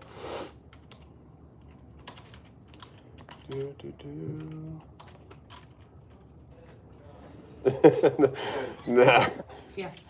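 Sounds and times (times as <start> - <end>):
keyboard typing: 0.6 - 6.9.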